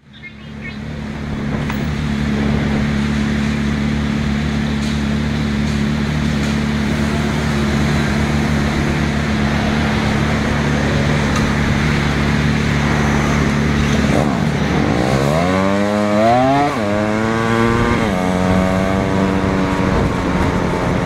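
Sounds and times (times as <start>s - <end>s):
motorcycle engine idling: 0.0s - 12.6s.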